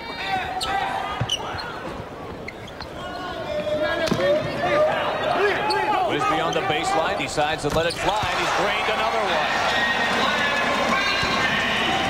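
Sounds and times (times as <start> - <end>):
arena crowd noise: 0.0 - 12.0
sneakers squeaking on hardwood: 0.6 - 3.8.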